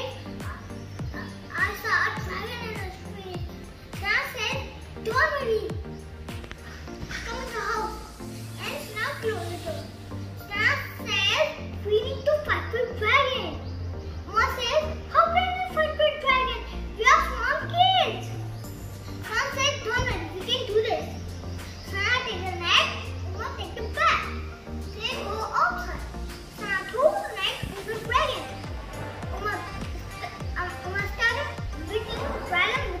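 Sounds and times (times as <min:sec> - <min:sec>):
young boy speaking: 0:00.0 - 0:05.9, 0:06.7 - 0:13.7, 0:14.3 - 0:18.4, 0:19.2 - 0:21.2, 0:21.8 - 0:28.6, 0:29.3 - 0:33.0
background music: 0:00.0 - 0:33.0.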